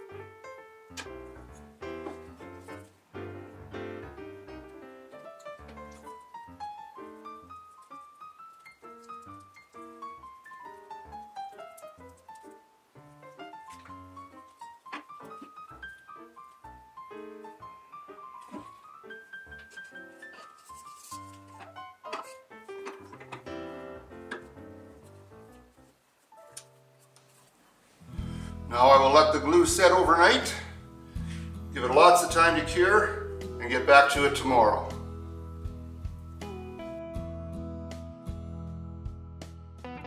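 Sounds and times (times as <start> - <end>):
instrumental background music: 0.0 - 27.4, 28.0 - 40.0
man speaking: 28.6 - 30.8, 31.7 - 35.0.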